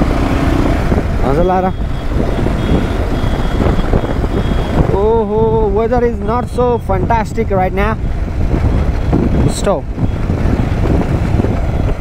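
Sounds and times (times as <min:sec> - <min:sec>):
motorcycle engine running: 0:00.0 - 0:12.0
wind rushing over microphone: 0:00.0 - 0:12.0.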